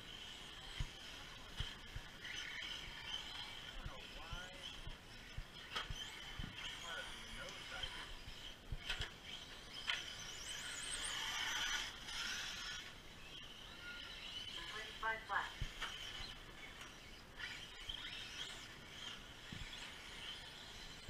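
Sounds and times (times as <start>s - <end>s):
rc cars whining: 0.0s - 21.0s.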